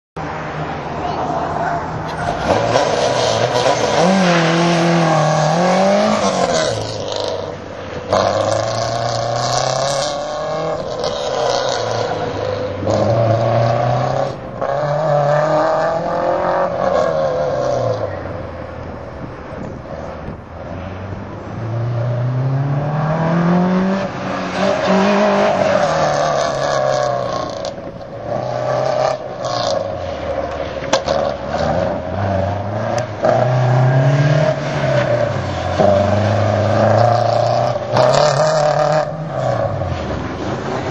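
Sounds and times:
car engine revving hard: 2.1s - 18.0s, 21.6s - 30.0s
car engine accelerating hard: 21.0s - 30.0s.

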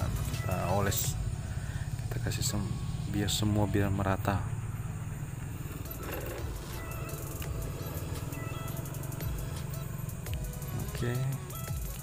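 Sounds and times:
low steady hum: 0.0s - 12.0s
quiet background music: 0.0s - 12.0s.

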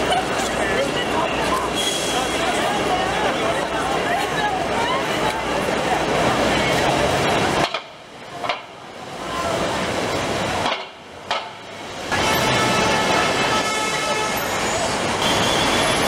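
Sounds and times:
passing voices: 0.0s - 8.4s
city traffic: 0.0s - 16.0s.

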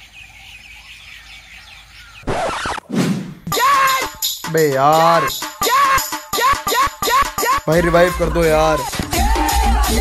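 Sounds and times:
small birds chirping: 0.0s - 2.7s.

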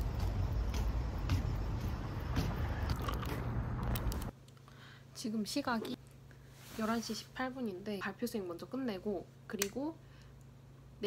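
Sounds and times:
low steady rumble: 0.0s - 4.4s
hard candy crunching: 2.9s - 4.3s.

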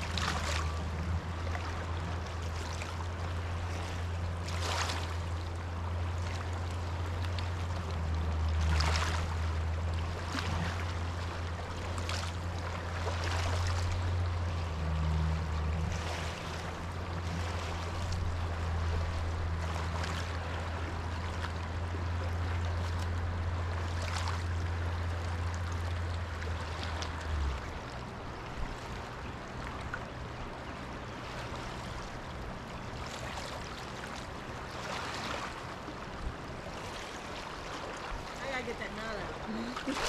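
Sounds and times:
low steady hum: 0.0s - 40.0s
fast-flowing river rushing: 34.4s - 40.0s.

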